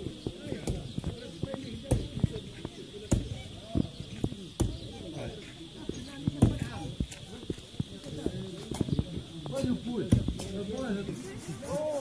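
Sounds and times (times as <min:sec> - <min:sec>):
men talking: 0:00.0 - 0:12.0
wood being chopped: 0:00.1 - 0:05.2, 0:05.9 - 0:06.8, 0:08.7 - 0:10.8.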